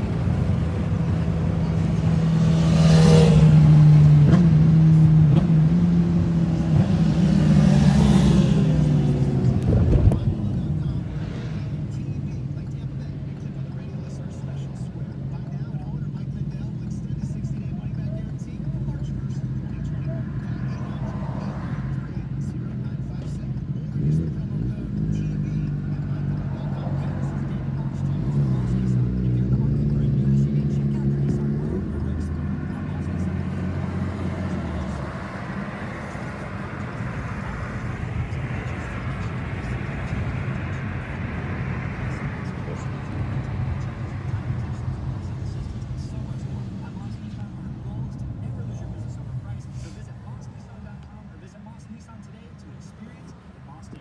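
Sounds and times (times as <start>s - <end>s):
car engine hum: 0.0s - 54.0s
tyre and road noise: 0.0s - 54.0s.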